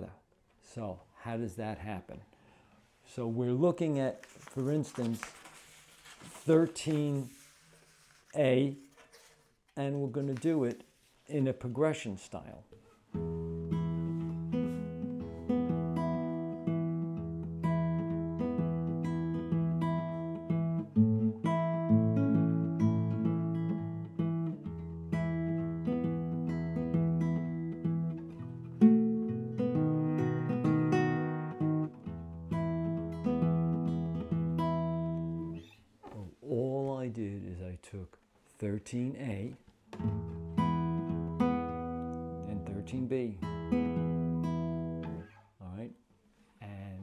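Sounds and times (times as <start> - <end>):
fingerpicked classical guitar blues: 12.8 - 36.4, 39.3 - 45.5.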